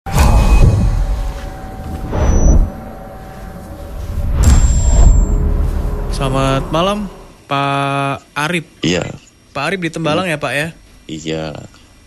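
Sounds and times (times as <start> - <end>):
deep booming rumble: 0.1 - 7.4
thin high whine: 0.1 - 8.1.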